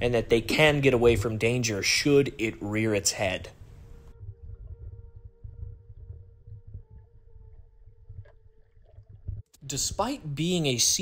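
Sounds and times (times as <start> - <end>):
faint steady hums: 0.0 - 11.0
muffled underwater rumble: 3.6 - 9.5.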